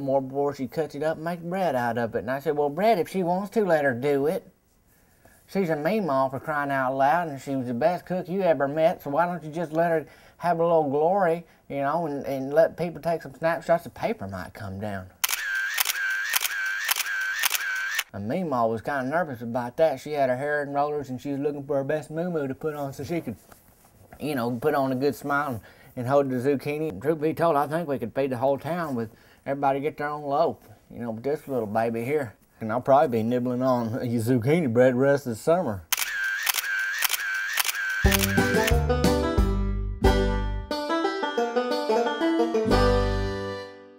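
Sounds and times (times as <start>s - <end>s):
camera shutter clicks: 15.2s - 18.1s, 35.9s - 38.8s
banjo music: 38.4s - 43.9s.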